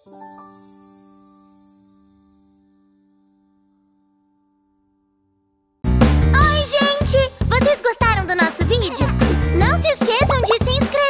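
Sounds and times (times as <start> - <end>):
tinkling chimes: 0.0 - 4.7, 9.1 - 10.6
children's music jingle: 6.3 - 11.0
high cartoon character voice: 6.4 - 11.0.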